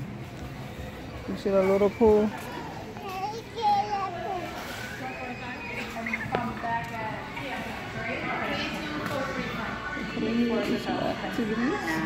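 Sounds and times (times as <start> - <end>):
children chattering: 1.7 - 10.5.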